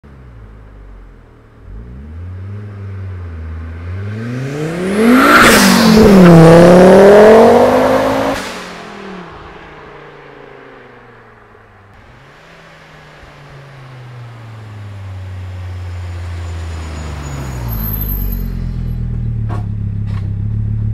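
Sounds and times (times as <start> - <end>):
car engine driving: 0.0 - 20.9.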